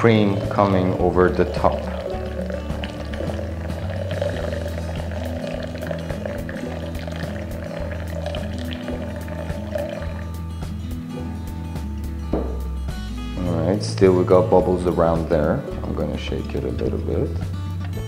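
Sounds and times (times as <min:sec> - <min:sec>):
hot water pouring onto coffee: 0:00.0 - 0:10.4
background music with bass line: 0:00.0 - 0:18.0.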